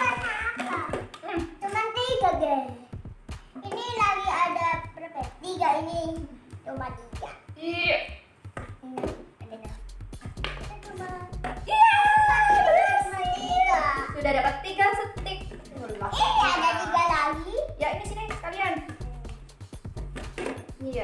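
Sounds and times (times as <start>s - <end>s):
child's voice: 0.0s - 2.9s, 3.6s - 7.6s, 10.7s - 11.3s, 13.0s - 14.2s, 15.2s - 19.3s
background music: 0.0s - 21.0s.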